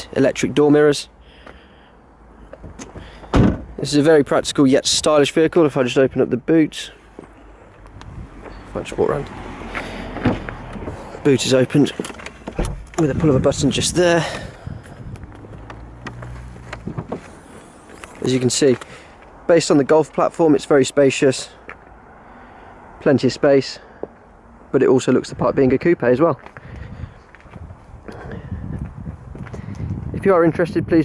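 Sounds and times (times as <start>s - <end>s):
footsteps on tarmac: 7.0s - 20.5s, 21.6s - 22.0s, 23.8s - 24.4s, 25.6s - 30.8s.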